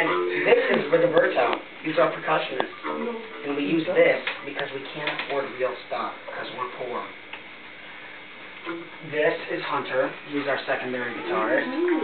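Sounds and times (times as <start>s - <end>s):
room hiss: 0.0s - 12.0s.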